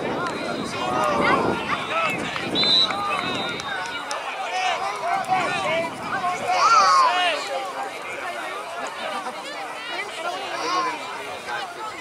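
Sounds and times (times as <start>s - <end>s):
people shouting: 0.8s - 7.5s.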